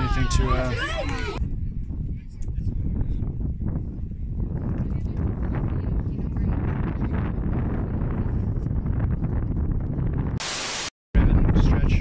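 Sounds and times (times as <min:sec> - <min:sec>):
wind buffeting microphone: 0:00.0 - 0:10.4, 0:11.2 - 0:12.0
static hiss: 0:10.4 - 0:10.9.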